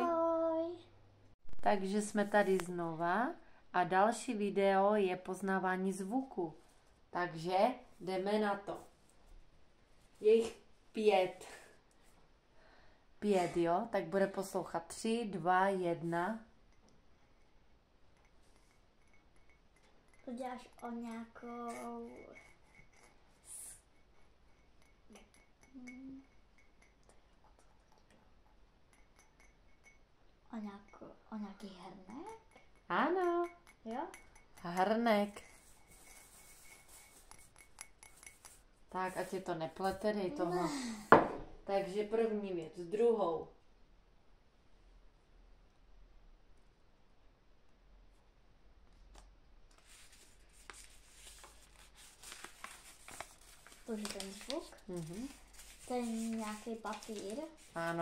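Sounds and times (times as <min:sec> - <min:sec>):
paper crinkling: 0:49.7 - 0:57.8.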